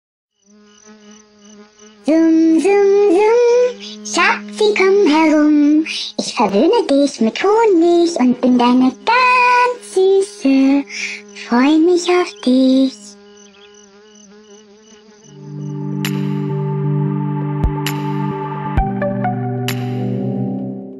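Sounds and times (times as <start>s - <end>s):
cartoon bee buzzing: 0.4s - 18.4s
low music chord: 15.3s - 20.9s.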